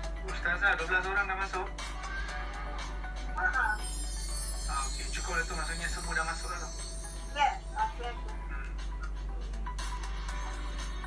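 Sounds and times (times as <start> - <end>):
music through laptop speaker: 0.0 - 11.0.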